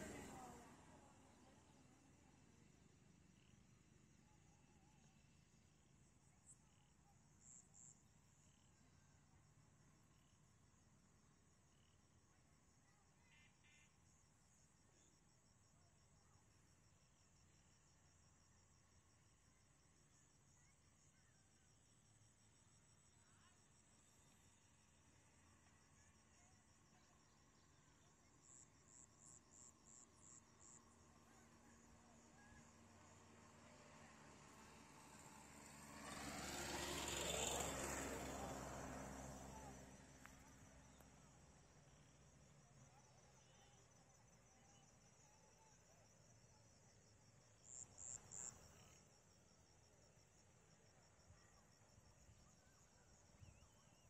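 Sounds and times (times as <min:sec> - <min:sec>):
insect chirping: 0:03.2 - 0:03.8, 0:06.2 - 0:12.0, 0:12.7 - 0:54.0.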